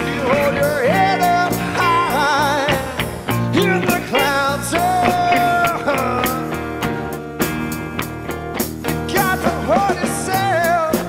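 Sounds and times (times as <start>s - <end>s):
harmonica bent notes: 0.0s - 6.5s
blues-rock band playing: 0.0s - 11.0s.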